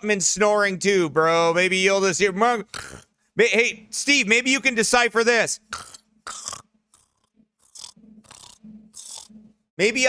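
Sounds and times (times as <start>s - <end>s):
man imitating snoring: 2.7s - 3.1s, 5.7s - 9.3s.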